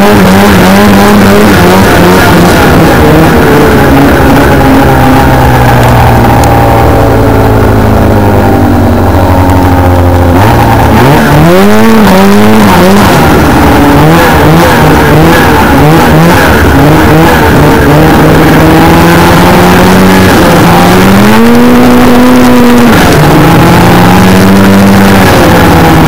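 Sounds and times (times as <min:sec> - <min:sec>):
snowmobile engine revving: 0:00.0 - 0:26.0.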